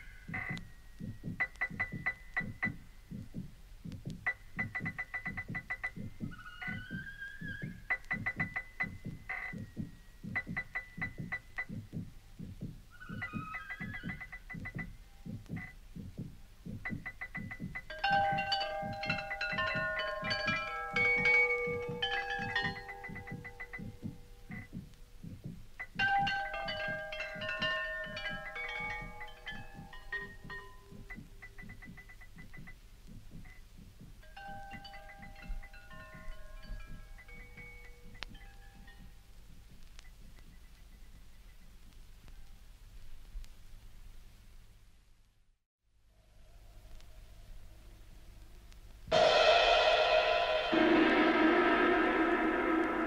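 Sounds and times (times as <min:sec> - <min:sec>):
high bell-like electronic tones: 0:17.8 - 0:24.7, 0:26.0 - 0:32.0, 0:49.1 - 0:53.0
rapid low electronic pulse: 0:49.1 - 0:53.0.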